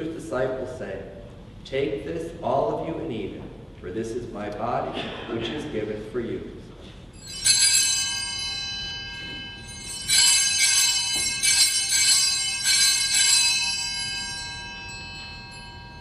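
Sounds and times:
altar bells ringing: 0:07.1 - 0:16.0.

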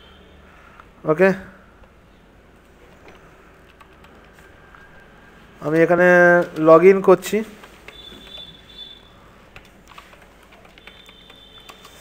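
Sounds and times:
keyboard keystrokes: 0:03.1 - 0:04.4, 0:05.7 - 0:06.9, 0:07.6 - 0:08.5, 0:09.5 - 0:12.0.

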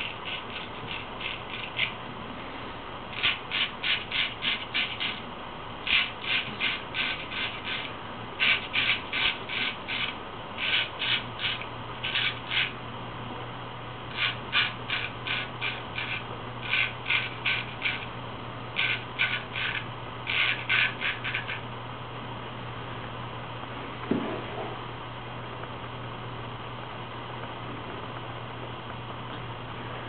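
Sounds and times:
razor scraping stubble: 0:00.0 - 0:02.0, 0:03.2 - 0:05.2, 0:05.8 - 0:12.8, 0:14.1 - 0:18.1, 0:18.8 - 0:21.6.

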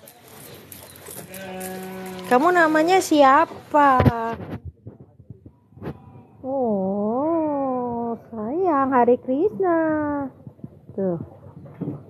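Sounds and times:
calf mooing: 0:01.2 - 0:02.8.

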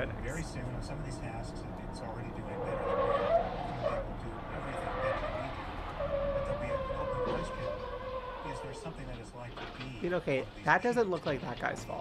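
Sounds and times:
tires screeching in skid: 0:02.3 - 0:09.3.

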